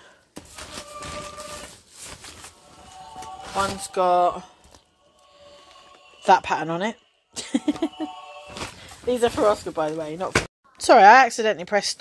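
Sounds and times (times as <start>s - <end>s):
plastic carrier bag rustling: 0.4s - 4.1s.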